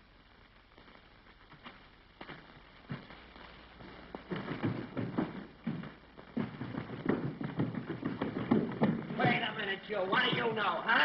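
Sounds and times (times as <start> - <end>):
hurried footsteps: 1.5 - 11.0.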